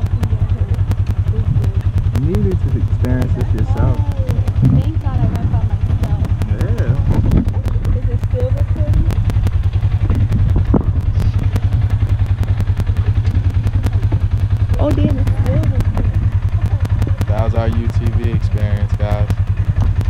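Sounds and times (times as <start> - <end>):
utility vehicle engines idling: 0.0 - 20.0.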